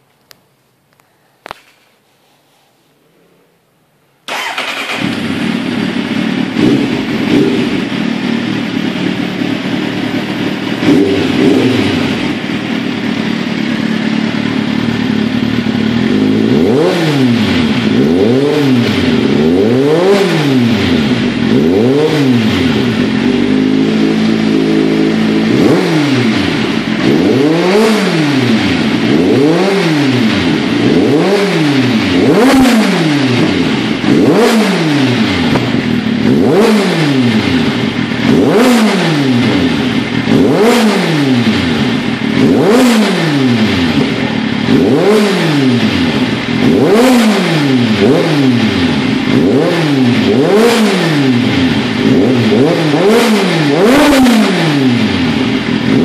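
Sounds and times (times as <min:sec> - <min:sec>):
motorcycle engine revving: 0:04.3 - 0:56.0
exhaust pops and crackles: 0:35.4 - 0:36.1.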